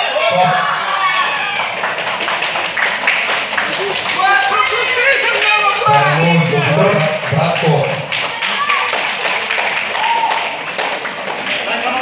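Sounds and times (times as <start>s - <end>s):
crowd clapping: 0.0s - 12.0s
voices talking and calling out: 3.8s - 7.6s.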